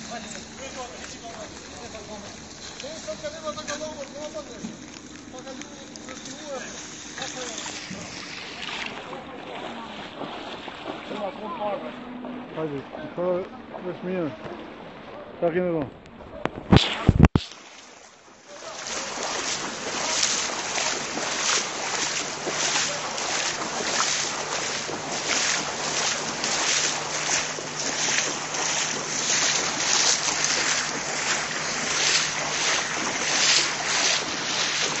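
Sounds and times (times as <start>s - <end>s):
steady low hum: 0.0s - 17.3s, 18.2s - 35.0s
footsteps splashing in water: 0.0s - 35.0s.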